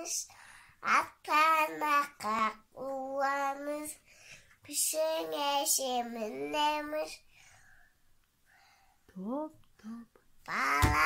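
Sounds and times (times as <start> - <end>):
girl singing: 0.0 - 4.0, 4.7 - 7.2, 9.8 - 11.0
faint breathing: 0.3 - 0.8, 4.0 - 4.6, 7.2 - 9.1.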